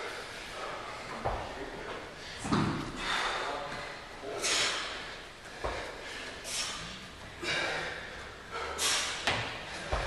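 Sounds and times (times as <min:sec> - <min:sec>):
person breathing heavily: 0:00.0 - 0:10.0.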